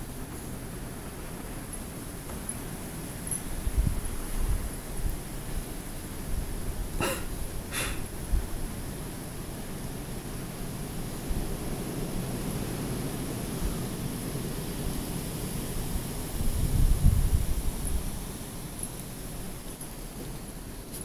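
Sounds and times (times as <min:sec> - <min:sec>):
wind buffeting microphone: 0:00.0 - 0:20.7.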